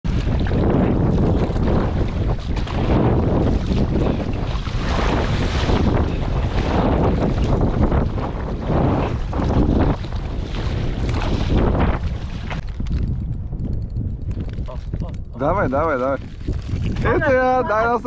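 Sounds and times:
paddles splashing water: 0.0s - 12.7s, 16.0s - 18.0s
wind buffeting microphone: 0.0s - 18.0s.

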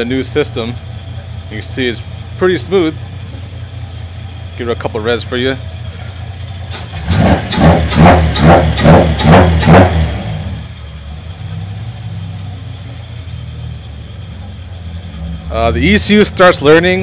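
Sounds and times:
car engine idling: 0.0s - 17.0s
car engine revving: 0.0s - 17.0s.

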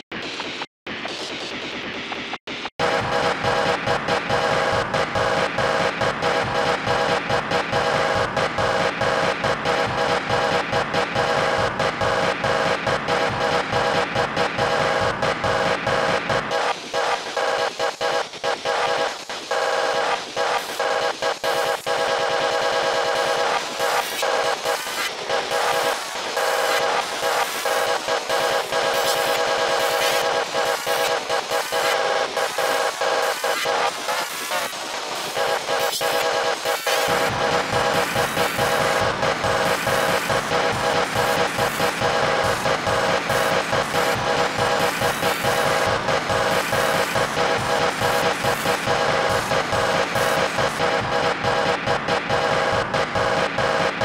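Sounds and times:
stuttering electronic remix music: 0.1s - 54.0s.

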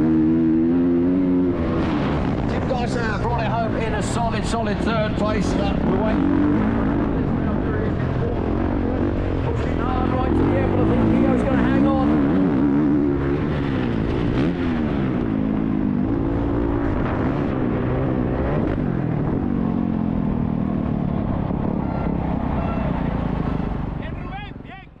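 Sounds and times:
motorcycle engine revving: 0.0s - 24.3s.

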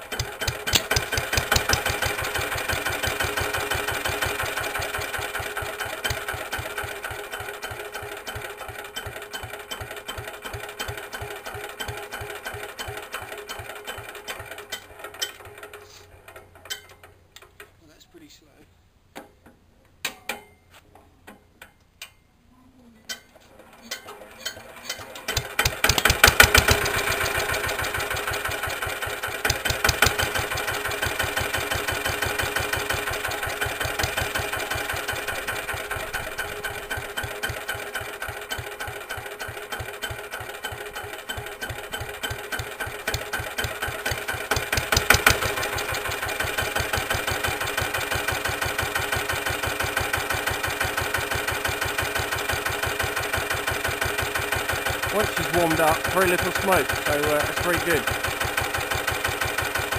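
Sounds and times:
diesel engine knocking idle: 0.0s - 12.7s, 25.3s - 59.9s.

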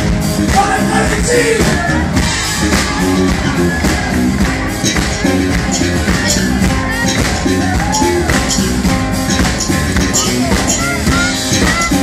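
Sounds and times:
blues-rock band playing: 0.0s - 12.0s.

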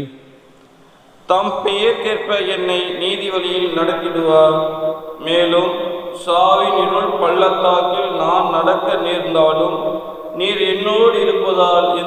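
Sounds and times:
man chanting into a microphone: 1.3s - 12.0s.

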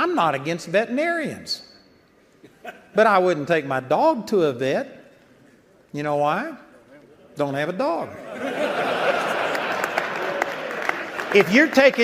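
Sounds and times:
congregation laughing: 2.4s - 3.0s, 8.1s - 12.0s
people applauding: 9.1s - 12.0s.

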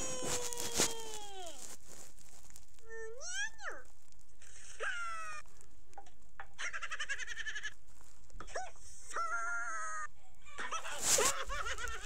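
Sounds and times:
goat-like bleats and squeals: 0.0s - 1.8s.

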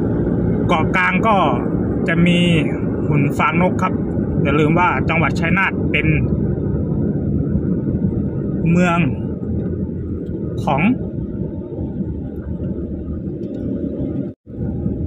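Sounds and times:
car rumble from inside cabin: 0.0s - 15.0s.

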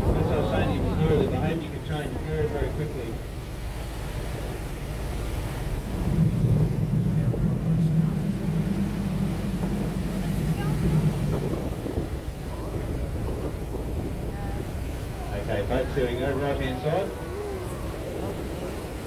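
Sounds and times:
low rumble of boat and water: 0.0s - 19.0s
wind buffeting microphone: 0.0s - 19.0s.

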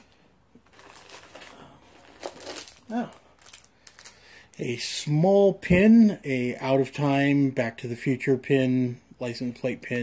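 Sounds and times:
packaging crinkling and rustling: 0.0s - 4.6s.

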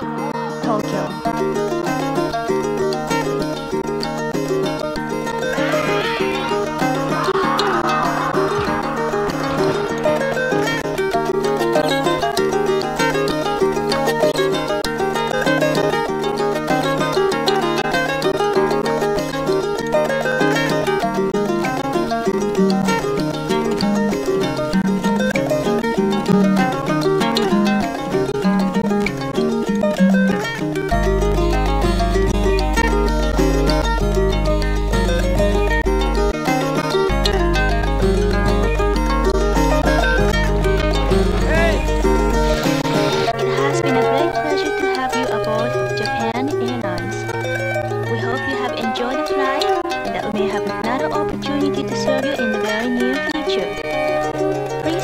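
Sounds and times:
layered string parts: 0.0s - 55.0s
plucked acoustic guitar: 0.0s - 55.0s
deep steady bass: 37.1s - 43.3s.

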